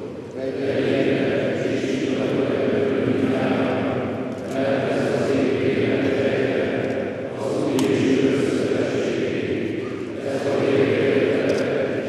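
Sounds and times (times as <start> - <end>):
choir singing slow chant: 0.0 - 12.0.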